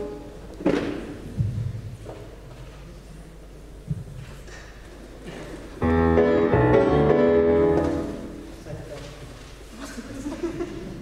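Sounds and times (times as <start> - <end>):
sustained piano chords: 5.8 - 8.5.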